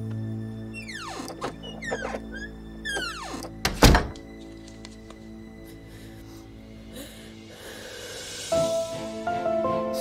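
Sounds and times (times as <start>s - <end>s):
soft background music: 0.0s - 10.0s
door hinges squealing: 0.7s - 4.2s
wooden door shutting thunk: 0.8s - 4.3s.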